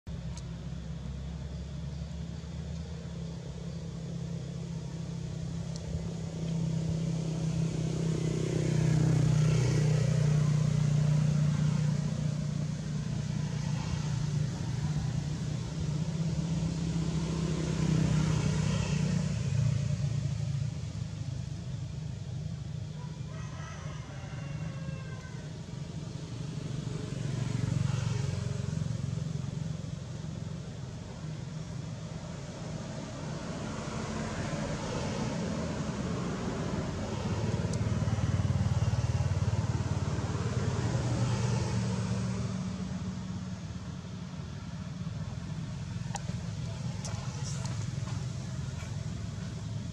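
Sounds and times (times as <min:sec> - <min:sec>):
motor vehicles passing: 0:00.1 - 0:49.9.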